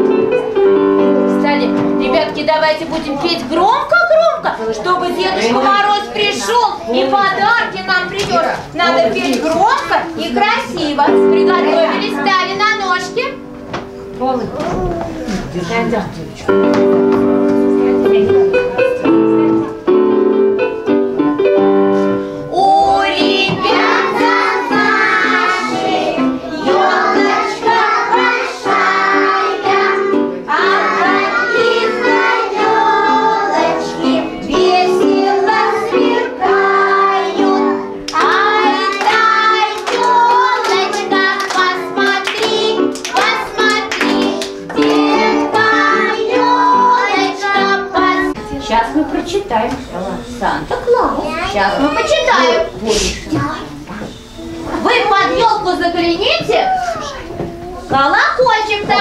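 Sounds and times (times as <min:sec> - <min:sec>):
instrumental accompaniment: 0:00.0 - 0:03.7, 0:04.4 - 0:50.4, 0:52.0 - 0:58.0
young children singing: 0:22.5 - 0:48.7.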